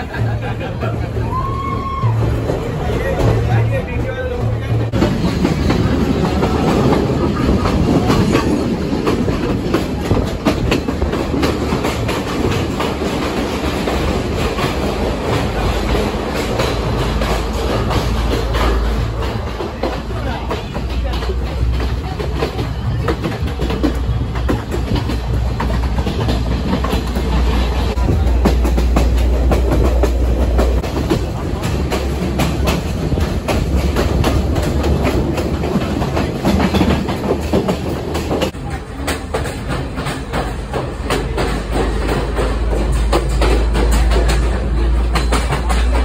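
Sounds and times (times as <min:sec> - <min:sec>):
low train rumble: 0:00.0 - 0:46.0
train wheels clattering on rails: 0:00.0 - 0:46.0
clicks over rail joints: 0:04.7 - 0:46.0.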